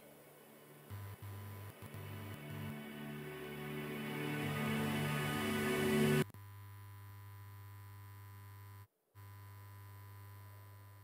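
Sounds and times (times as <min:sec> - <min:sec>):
low electrical hum: 0:00.0 - 0:04.0, 0:06.3 - 0:11.0.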